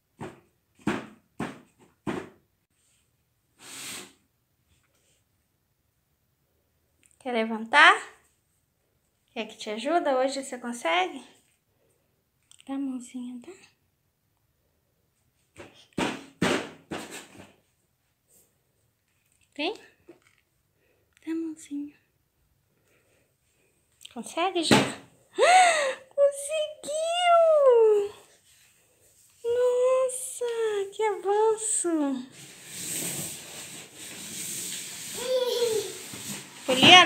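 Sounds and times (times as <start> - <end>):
plastic seat knocking on tiled floor: 0.2 - 2.4, 15.6 - 17.5.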